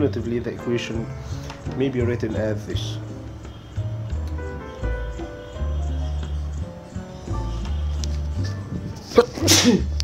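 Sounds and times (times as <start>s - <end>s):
background music: 0.0s - 10.0s
person sneezing: 9.2s - 9.9s.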